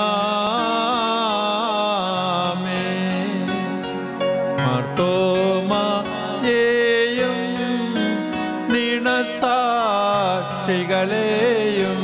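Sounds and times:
sustained instrumental chords: 0.0 - 12.0.

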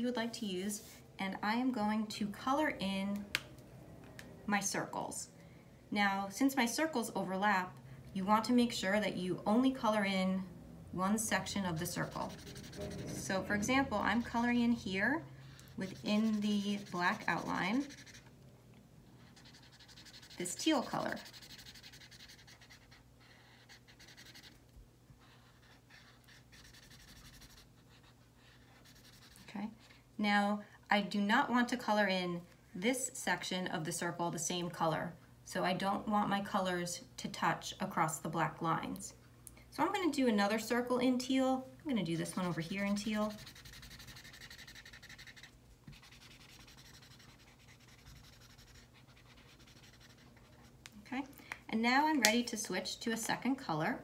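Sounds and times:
felt-tip marker scribbling on paper: 11.6 - 13.7, 15.6 - 18.3, 19.2 - 24.6, 25.2 - 29.5, 42.0 - 50.7.

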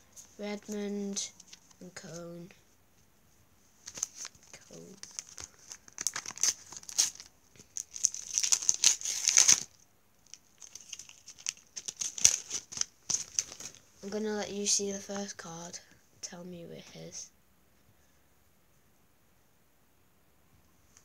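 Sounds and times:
foil packet crinkling: 3.8 - 13.9
stickers rustling: 3.8 - 14.3.

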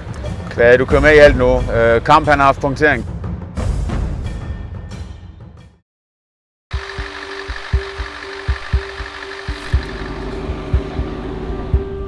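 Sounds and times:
bus engine idling: 6.8 - 11.9.

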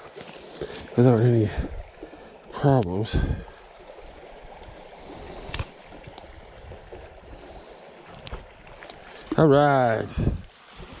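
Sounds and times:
creek water flowing: 0.0 - 11.0
sharp click: 5.5 - 5.7.

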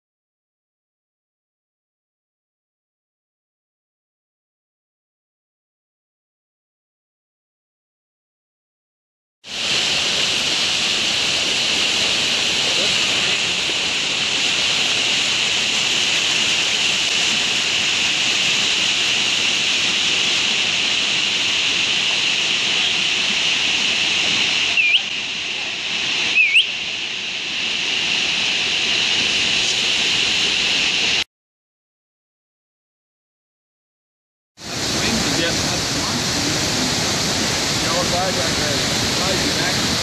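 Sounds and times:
creek water rushing over rocks: 9.5 - 31.2, 34.6 - 40.0
short rising whistles: 24.7 - 25.1, 26.3 - 26.8.

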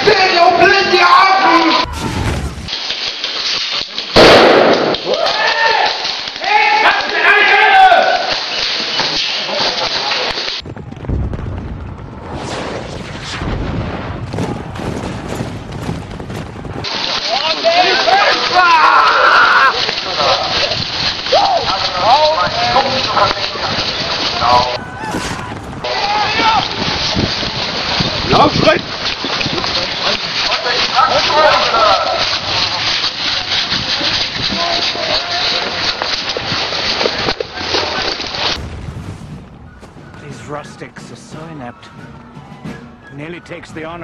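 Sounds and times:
low rumbling: 1.8 - 2.8, 10.6 - 16.9, 20.5 - 29.9, 38.4 - 44.0
cannon blast: 1.8 - 2.9, 4.2 - 5.2, 10.6 - 17.2, 38.4 - 39.8
gunfire cracks: 1.8 - 6.3
men shouting: 17.4 - 20.6, 24.4 - 26.8.

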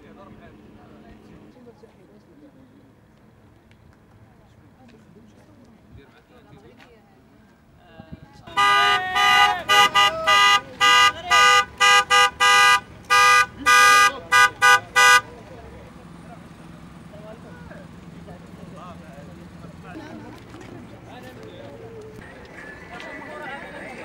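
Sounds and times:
murmur of voices: 0.0 - 24.0
traffic: 0.0 - 24.0
car horn honking: 8.5 - 15.5.

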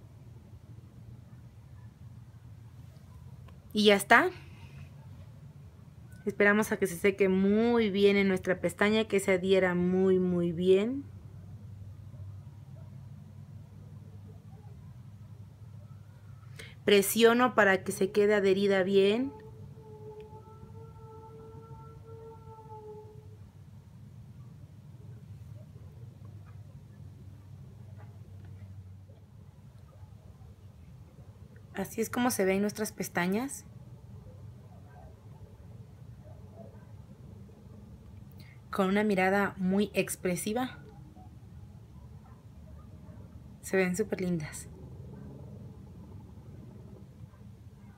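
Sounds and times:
faint low background hum: 0.0 - 47.9
low background rumble: 0.0 - 47.9.

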